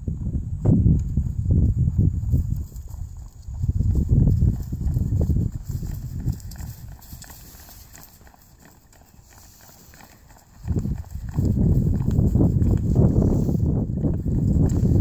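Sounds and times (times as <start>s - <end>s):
horse hooves trotting on grass: 0.6s - 15.0s.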